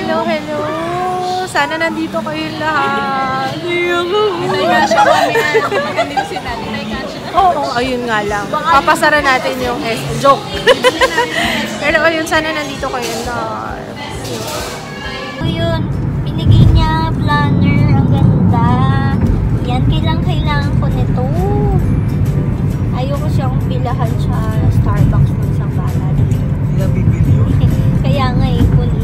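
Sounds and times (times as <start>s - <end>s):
song with sung vocal: 0.0s - 5.8s
road rumble inside car: 15.4s - 29.0s.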